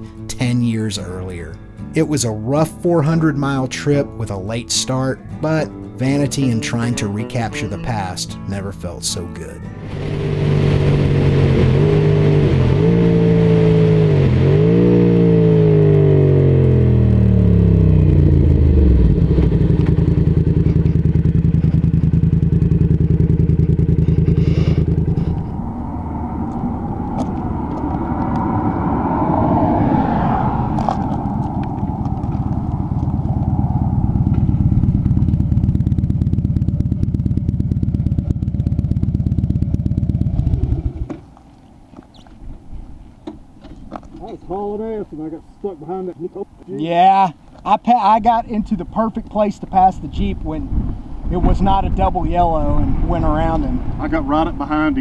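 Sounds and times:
motorcycle engine: 0:09.6 - 0:41.4
second motorcycle engine: 0:09.6 - 0:41.4.

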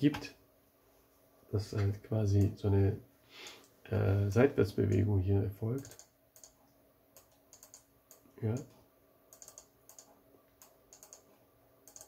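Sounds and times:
mouse and keyboard clicks: 0:07.2 - 0:08.2, 0:09.3 - 0:12.0.

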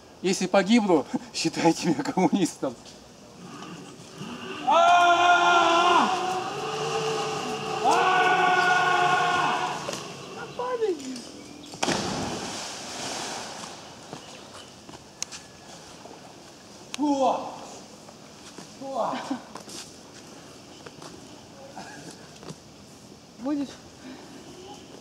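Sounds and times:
man yelling: 0:04.6 - 0:11.0
water settling: 0:06.2 - 0:14.6
body splashing into water: 0:11.8 - 0:13.9.

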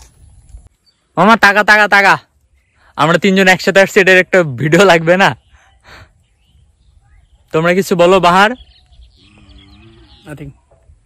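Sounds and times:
faint animal call: 0:09.2 - 0:10.4.

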